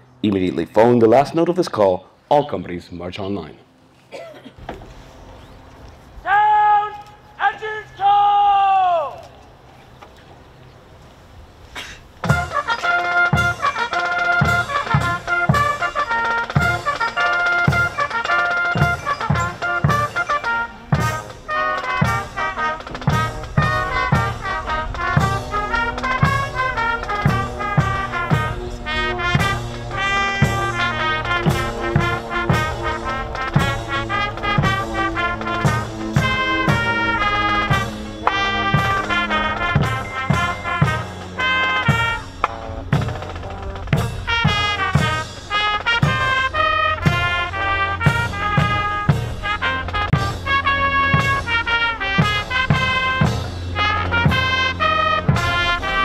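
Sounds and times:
steady drum beat: 12.2s - 56.0s
trumpets and trombones playing march: 12.2s - 56.0s.

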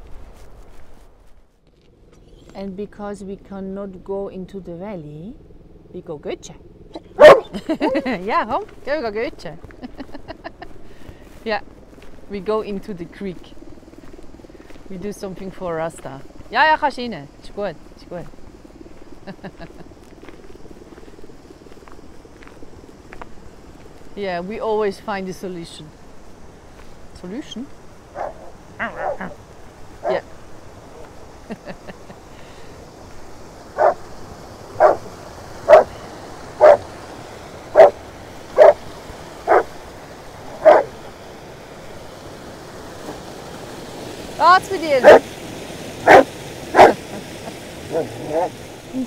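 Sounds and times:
low pulsing hum: 0.0s - 24.6s
creek rushing: 6.9s - 49.0s
dog barking: 7.0s - 7.6s, 28.2s - 29.4s, 33.8s - 34.0s, 34.8s - 35.1s, 35.7s - 35.9s, 36.6s - 36.8s, 37.8s - 38.0s, 38.6s - 38.8s, 39.5s - 39.7s, 40.6s - 41.0s, 45.0s - 45.2s, 46.0s - 47.1s, 47.9s - 48.5s
footsteps crunching on gravel: 8.6s - 16.8s, 17.7s - 24.2s, 26.1s - 27.1s.

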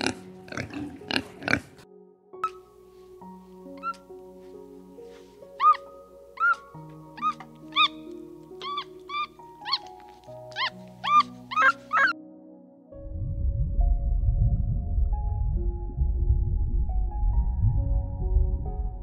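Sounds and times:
soft music of held notes: 0.0s - 19.0s
monkey squeaky calls: 3.8s - 4.0s, 5.6s - 12.1s.

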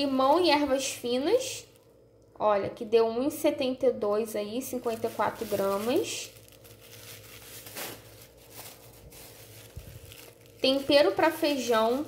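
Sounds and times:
plastic bag rustling: 4.5s - 12.0s.

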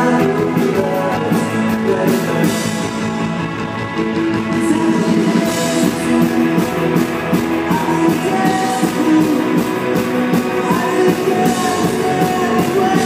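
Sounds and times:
bass guitar: 0.0s - 13.0s
drum kit: 0.0s - 13.0s
electric guitar chords: 0.0s - 13.0s.

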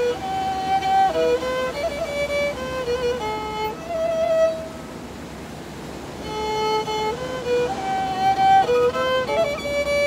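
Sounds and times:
bowed fiddle notes: 0.0s - 10.0s
steady hiss: 0.0s - 10.0s.

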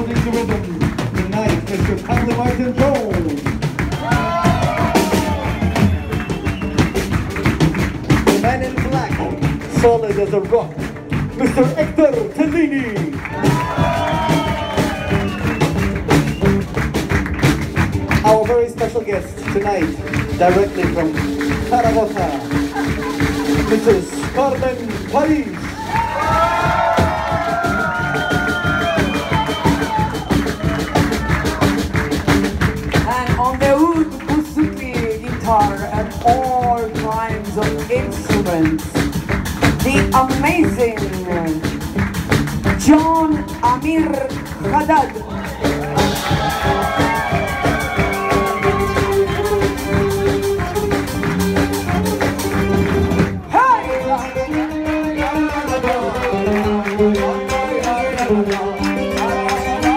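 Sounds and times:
audience cheering: 0.0s - 9.4s, 12.5s - 34.3s, 44.6s - 59.9s
live band playing: 0.0s - 59.9s.

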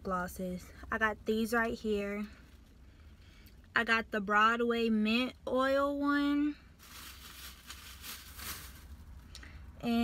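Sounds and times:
faint rustling of items: 6.2s - 10.0s.

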